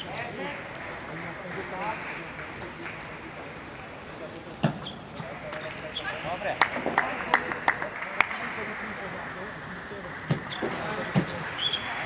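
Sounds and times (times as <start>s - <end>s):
shoe squeak: 0.0s - 0.5s, 4.6s - 6.2s, 10.3s - 12.0s
murmur of voices: 0.0s - 12.0s.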